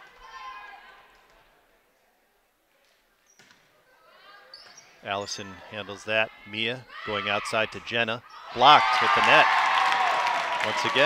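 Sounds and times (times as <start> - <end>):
faint voices in a gym: 0.0 - 9.5.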